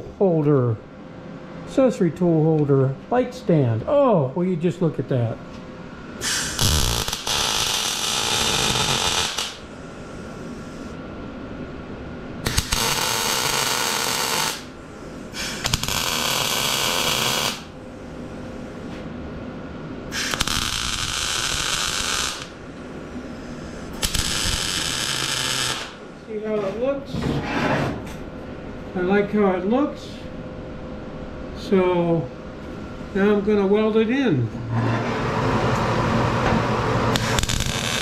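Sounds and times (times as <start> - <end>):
low steady welder hum: 0.0 - 27.4, 28.0 - 38.0
welder arc crackling and sizzling: 6.2 - 11.0, 12.4 - 17.8, 20.1 - 26.1, 36.9 - 38.0.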